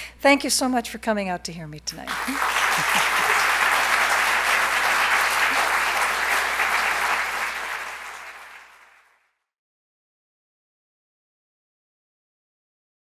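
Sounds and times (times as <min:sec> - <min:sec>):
audience applauding: 0:02.1 - 0:09.3.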